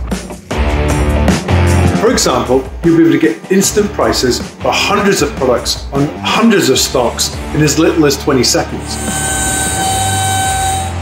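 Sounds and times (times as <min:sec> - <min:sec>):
person talking: 0:02.0 - 0:09.0
two-tone whine: 0:08.8 - 0:11.0.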